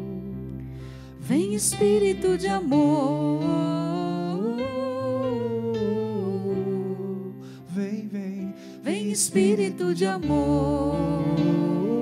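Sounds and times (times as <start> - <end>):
soft keyboard accompaniment: 0.0 - 12.0
man singing worship song: 7.6 - 9.6.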